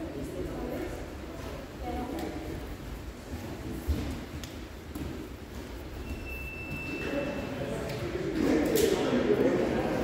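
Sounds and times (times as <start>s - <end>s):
voices echoing in a hall: 0.0s - 10.0s.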